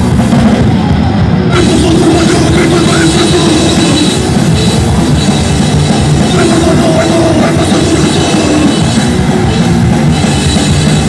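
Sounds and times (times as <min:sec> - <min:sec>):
punk band playing live: 0:00.0 - 0:11.0.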